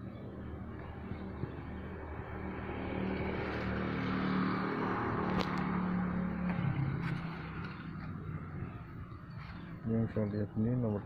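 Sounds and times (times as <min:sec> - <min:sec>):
vehicle engine passing by: 0:00.4 - 0:10.1.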